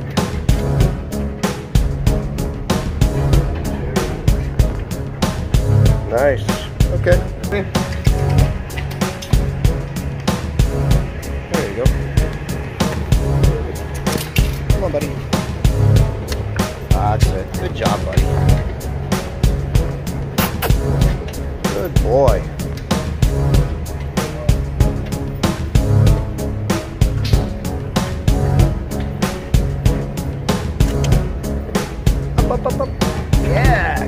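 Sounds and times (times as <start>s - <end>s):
music with beat bass and vocals: 19.4s - 34.0s.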